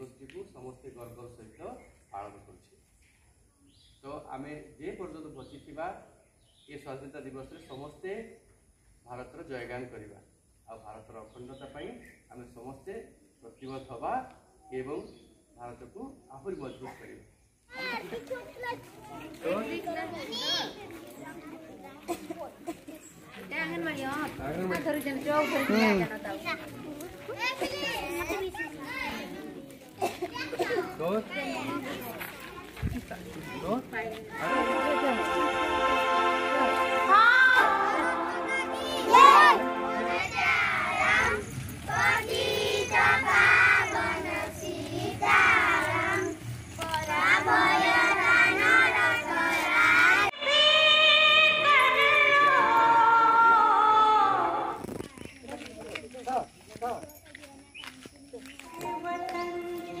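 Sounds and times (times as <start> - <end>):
children chattering and calling out: 16.8 - 60.0
group singing: 34.4 - 54.8.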